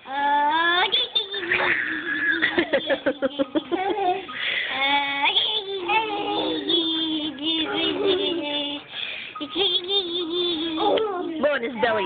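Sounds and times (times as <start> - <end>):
person singing sing-song tune: 0.0 - 11.4.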